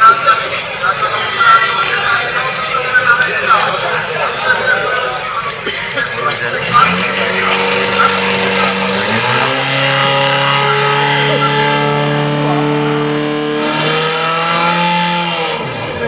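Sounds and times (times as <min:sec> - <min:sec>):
pump engine running at high revs: 0:06.5 - 0:16.0.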